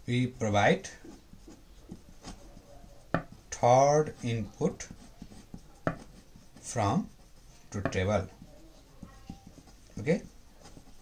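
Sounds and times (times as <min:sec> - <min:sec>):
pen scratching on paper: 0:00.3 - 0:11.0.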